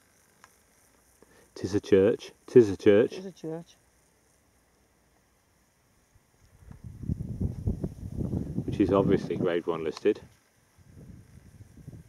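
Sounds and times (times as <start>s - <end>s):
wind buffeting microphone: 6.6s - 9.6s, 10.8s - 12.0s.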